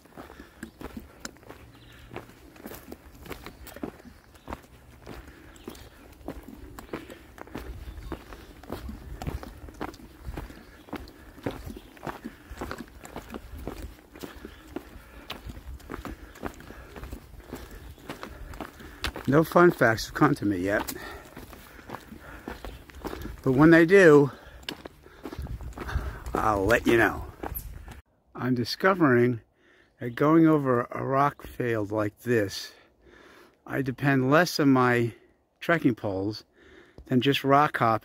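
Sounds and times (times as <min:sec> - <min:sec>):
footsteps on dirt trail: 0:00.0 - 0:28.1.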